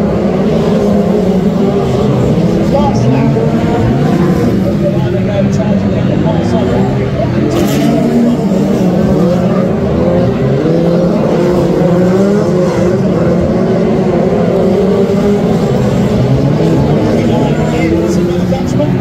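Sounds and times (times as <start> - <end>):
racing car engines: 0.0 - 19.0.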